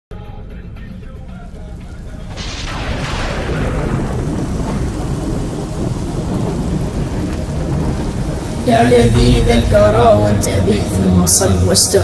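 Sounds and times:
car road and engine rumble: 0:00.2 - 0:12.0.

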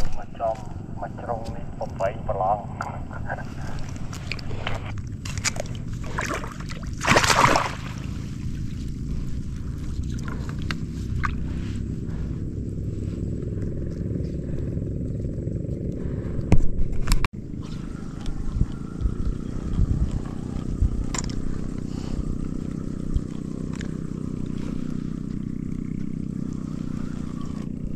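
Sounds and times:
small boat engine running: 0:00.0 - 0:27.9
fishing tackle scraping: 0:02.8 - 0:06.6.

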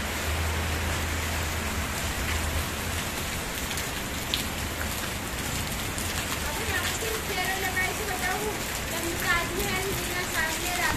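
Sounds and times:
rain hiss: 0:00.0 - 0:10.9
sharp raindrop ticks: 0:02.2 - 0:10.9.

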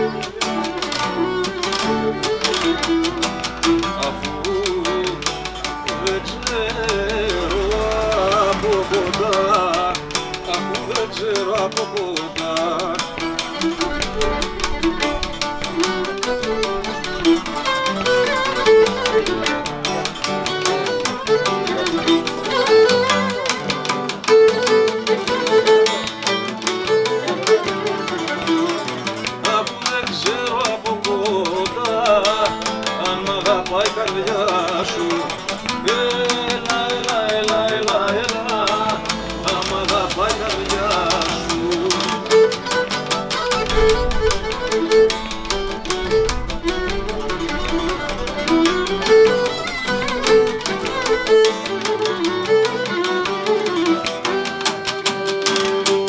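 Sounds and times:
bowed lyra melody: 0:00.0 - 0:56.0
lute and acoustic guitar strumming: 0:00.0 - 0:56.0.

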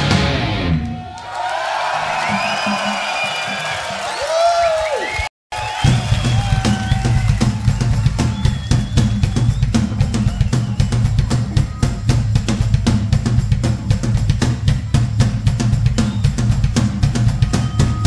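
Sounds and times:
rock band playing live: 0:00.0 - 0:01.0, 0:05.7 - 0:18.0
drum kit steady beat: 0:05.5 - 0:18.0.

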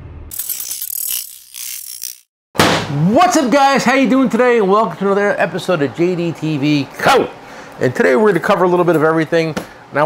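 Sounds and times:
ratchet clicking rapidly: 0:00.3 - 0:02.3.

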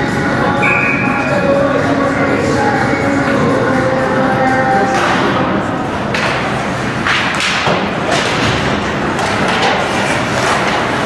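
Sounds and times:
hockey thuds against rink boards: 0:07.0 - 0:11.0.

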